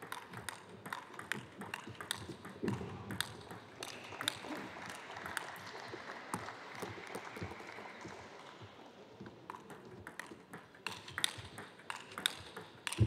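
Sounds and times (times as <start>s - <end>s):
table tennis ball clicks: 9.5s - 13.0s.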